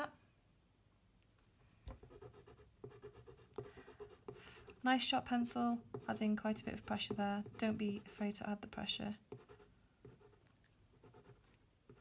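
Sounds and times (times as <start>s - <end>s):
coloured pencil scratching on paper: 2.0s - 8.4s, 9.3s - 12.0s.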